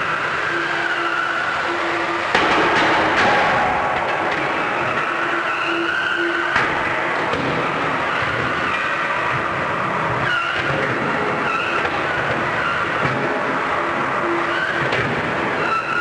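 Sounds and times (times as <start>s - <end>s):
arena noise: 0.7s - 9.9s.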